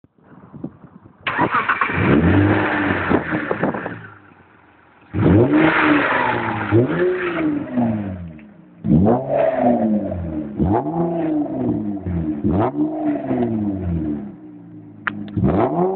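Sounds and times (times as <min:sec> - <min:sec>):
car engine revving: 0:01.3 - 0:15.9.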